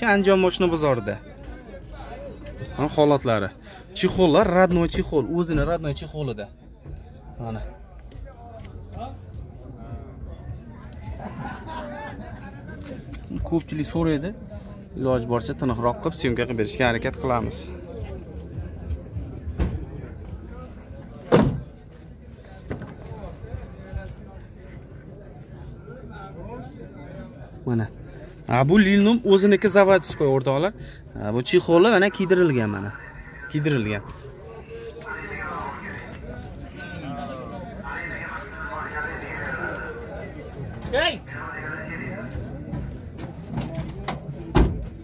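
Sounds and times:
people talking in background: 0.0s - 45.0s
truck door shutting: 21.3s - 21.7s.

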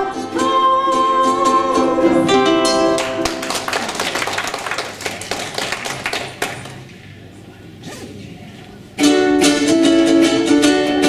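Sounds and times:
ukulele and banjo chord: 0.0s - 3.4s, 9.0s - 11.0s
audience applause: 2.9s - 6.9s.

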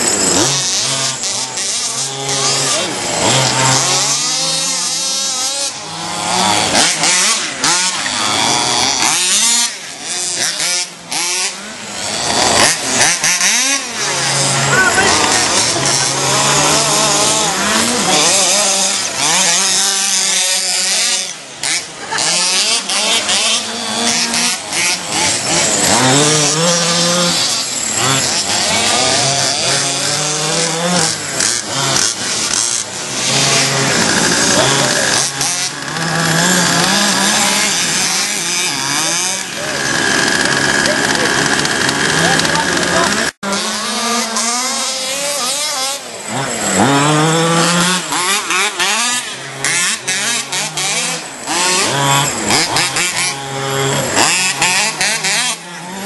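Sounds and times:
small two-stroke engines revving: 0.0s - 56.0s.

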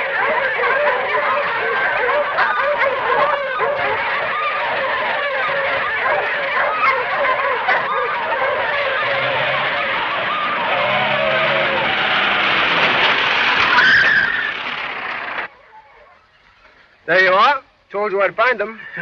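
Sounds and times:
wavering calls: 0.0s - 12.9s
car engine running at speed: 7.6s - 13.7s, 14.5s - 15.5s.

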